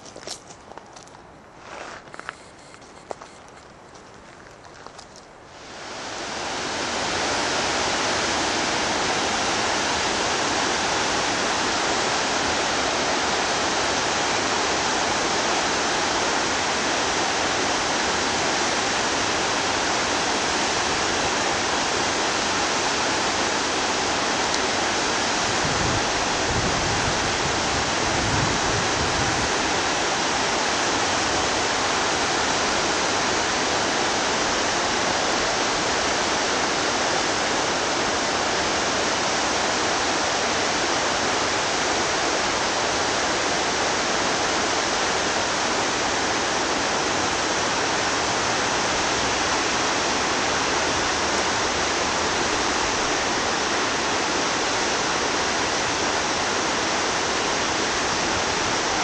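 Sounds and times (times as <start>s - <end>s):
stream rushing over stones: 4.8s - 59.0s.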